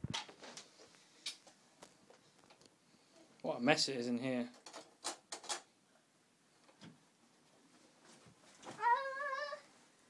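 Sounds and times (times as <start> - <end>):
toddler calling out: 8.7 - 9.7.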